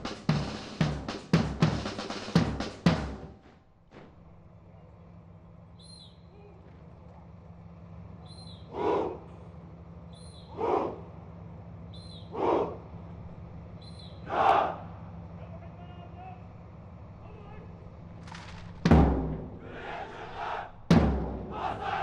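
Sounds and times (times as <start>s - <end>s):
cadets shouting in unison: 8.6s - 9.4s, 10.2s - 11.2s, 12.0s - 13.0s, 14.2s - 15.0s, 19.6s - 22.0s.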